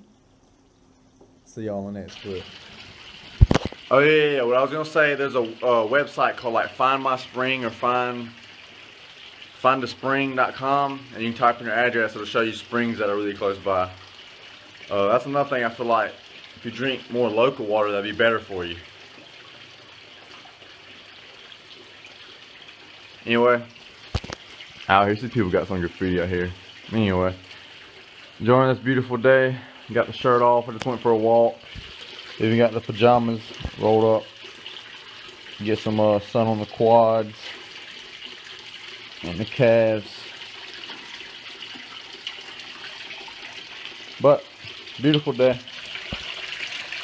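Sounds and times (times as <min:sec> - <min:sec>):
stream running water: 0:00.0 - 0:47.0.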